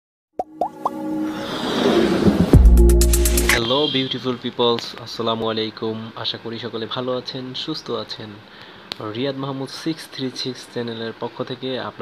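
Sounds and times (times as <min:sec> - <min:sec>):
rising pitch pops: 0:00.4 - 0:01.5
intro music: 0:00.4 - 0:03.7
whooshing swell: 0:00.9 - 0:03.6.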